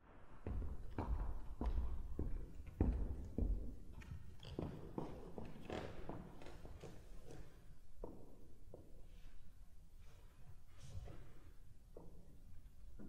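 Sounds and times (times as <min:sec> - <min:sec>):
footsteps on wooden floor: 0:00.4 - 0:08.8.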